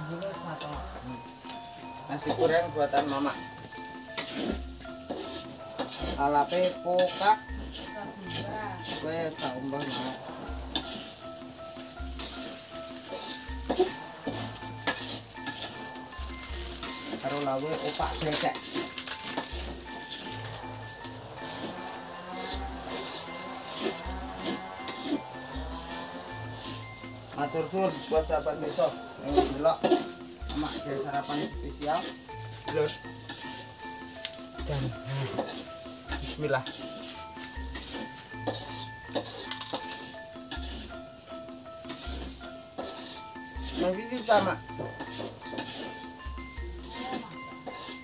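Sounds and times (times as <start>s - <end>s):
background music: 0.0s - 48.0s
food frying in a wok: 0.0s - 48.0s
spatula scraping a pan: 0.0s - 48.0s
ladle stirring: 4.0s - 8.0s, 8.8s - 33.8s, 41.8s - 46.2s.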